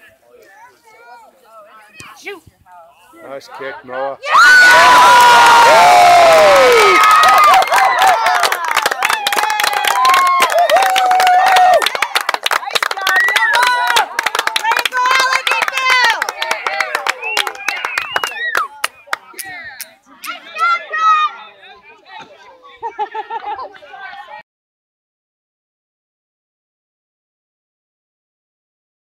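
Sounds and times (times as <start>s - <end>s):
spectators cheering and shouting: 4.2s - 21.6s
people clapping: 4.6s - 20.8s.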